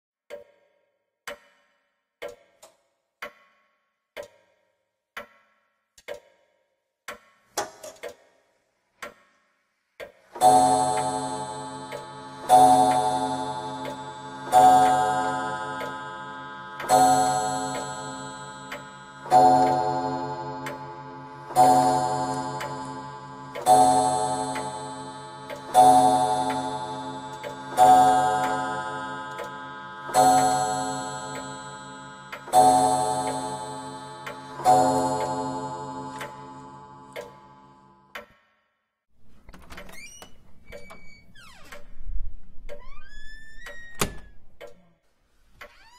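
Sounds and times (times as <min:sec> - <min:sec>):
clock ticking: 0:00.3 - 0:38.4, 0:39.3 - 0:45.9
clock chime striking: 0:10.4 - 0:38.0.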